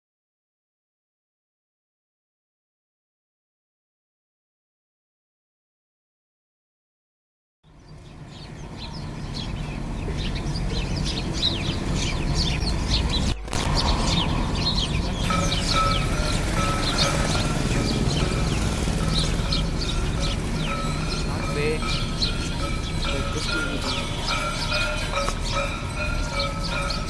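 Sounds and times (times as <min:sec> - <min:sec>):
sparrows chirping: 0:07.7 - 0:27.0.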